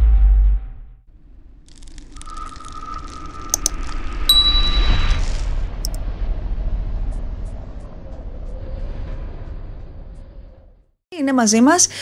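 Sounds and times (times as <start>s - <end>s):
quick clicks: 3.5s - 3.8s
held chime tone: 4.3s - 5.4s
high ding: 4.3s - 5.4s.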